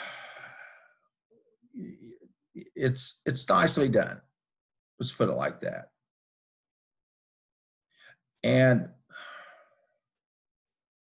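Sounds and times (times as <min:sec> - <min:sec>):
person breathing: 0:00.0 - 0:01.0, 0:09.1 - 0:09.9.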